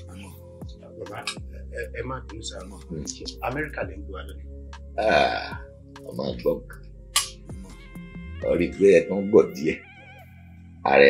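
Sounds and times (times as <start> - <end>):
soft background music: 0.0 - 11.0
man belching: 5.0 - 5.6.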